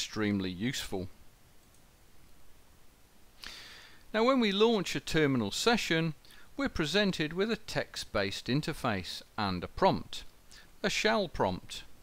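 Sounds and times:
computer mouse click: 1.6 - 1.9.

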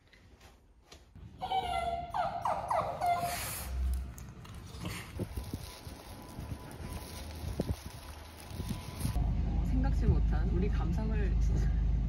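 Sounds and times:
dog whining: 1.4 - 3.9.

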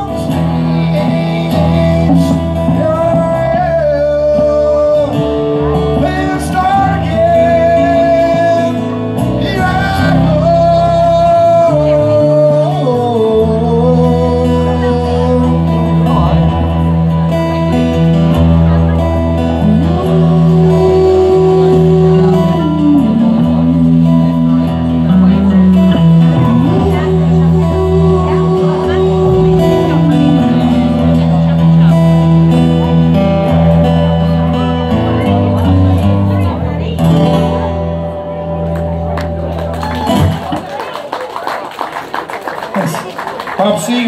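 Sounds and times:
acoustic guitar strumming: 0.0 - 40.7.

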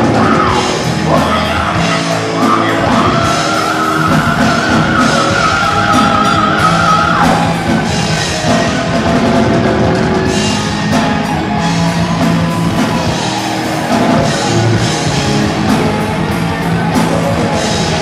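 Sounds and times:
heavy metal band playing live: 0.0 - 18.0.

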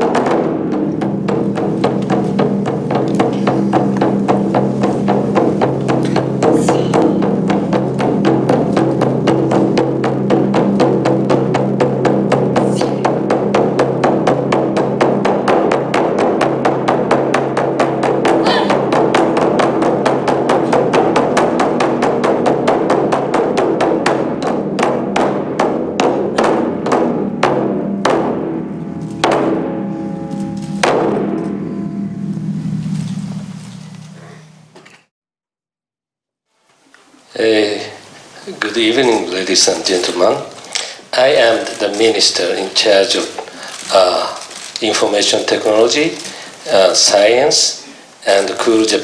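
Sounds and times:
taiko drums: 0.0 - 34.8
steady low tone: 27.2 - 35.1.

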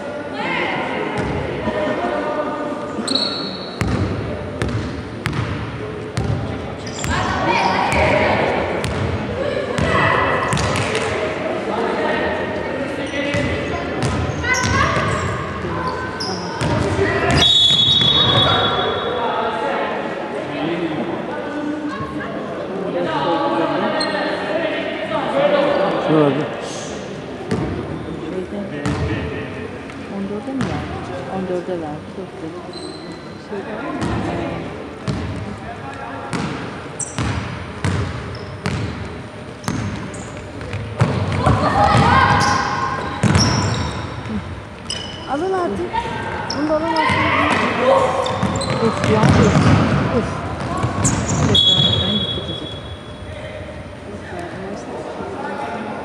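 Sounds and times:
voices echoing in hall: 0.0 - 56.0
shoes squeaking: 3.0 - 3.9, 6.8 - 8.0, 42.2 - 45.8, 48.2 - 49.7, 50.6 - 53.3
sneakers squeaking on court: 3.0 - 5.6, 6.2 - 8.1, 13.0 - 18.9, 32.7 - 33.4, 36.3 - 45.6, 46.4 - 53.3
basketball bouncing on wooden floor: 48.4 - 50.0.

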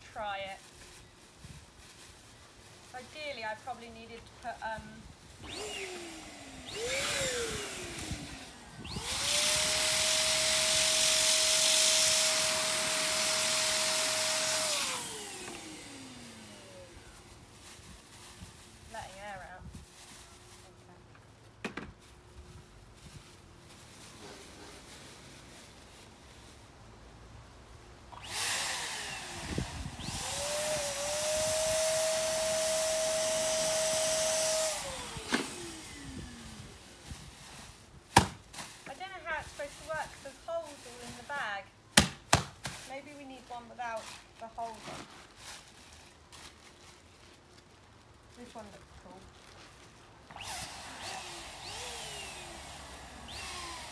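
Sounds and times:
electric balloon pump whining: 5.4 - 17.0, 28.1 - 36.8, 50.3 - 53.9.

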